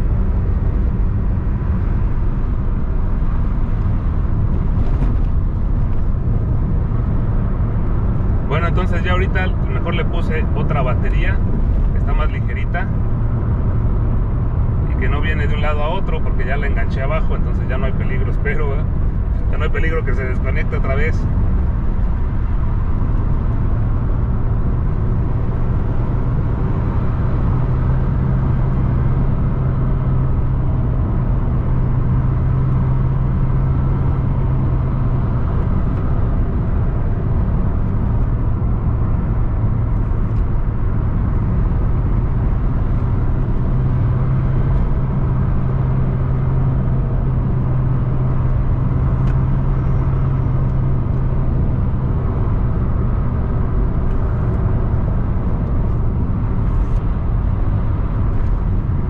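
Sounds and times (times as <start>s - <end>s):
car engine drone: 0.0s - 59.0s
road rumble: 0.0s - 59.0s.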